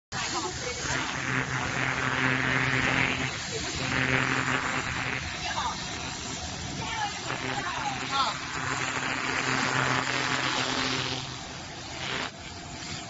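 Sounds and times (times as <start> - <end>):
laser cleaner buzzing hiss: 0.1 - 13.0.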